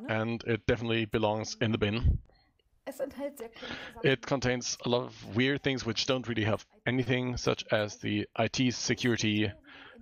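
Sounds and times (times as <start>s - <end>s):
person speaking: 0.0s - 2.3s, 3.0s - 10.0s.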